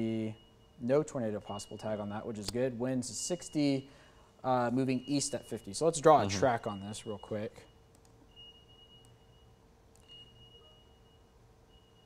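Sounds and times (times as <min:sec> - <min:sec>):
faint high-pitched beeps: 0:00.0 - 0:02.4, 0:03.1 - 0:12.0
low steady hum: 0:00.0 - 0:12.0.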